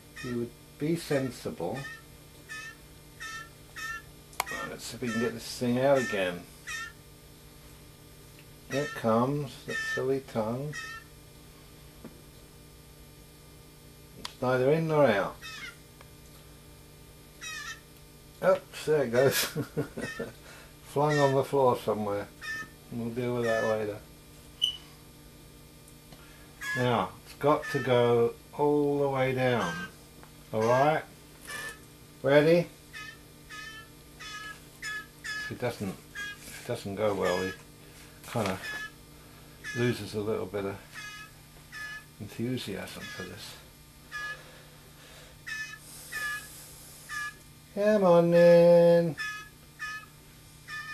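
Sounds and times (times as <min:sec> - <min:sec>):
fledgling bird begging calls: 0:00.0 - 0:07.1, 0:08.6 - 0:11.2, 0:14.8 - 0:15.9, 0:17.4 - 0:18.0, 0:19.1 - 0:25.0, 0:26.3 - 0:50.9
faint steady hum: 0:00.0 - 0:50.9.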